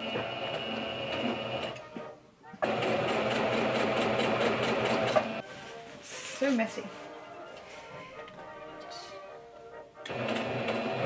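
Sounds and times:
sewing machine stitching: 0:00.0 - 0:01.8, 0:02.6 - 0:05.4, 0:10.1 - 0:11.0.

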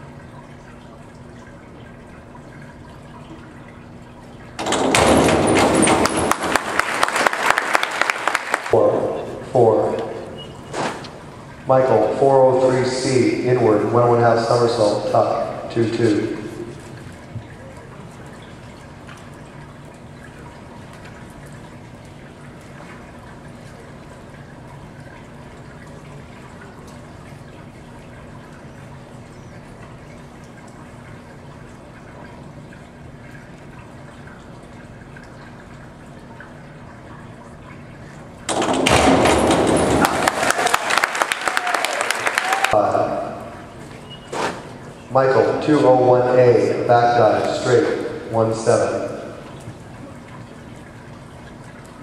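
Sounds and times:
low hum of indoor pool hall: 0:00.0 - 0:52.0
crowd applause and cheering: 0:06.3 - 0:08.8, 0:39.9 - 0:42.8.

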